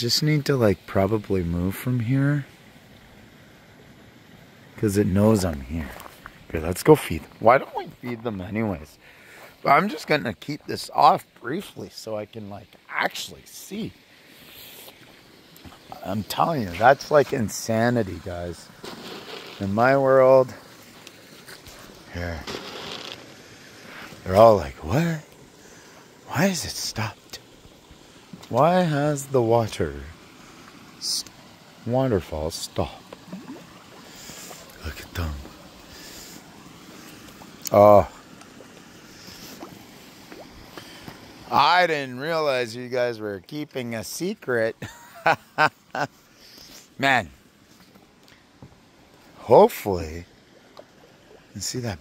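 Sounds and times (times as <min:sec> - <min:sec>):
faint outdoor background noise: 0:00.0 - 0:52.0
faint steady hiss: 0:00.0 - 0:52.0.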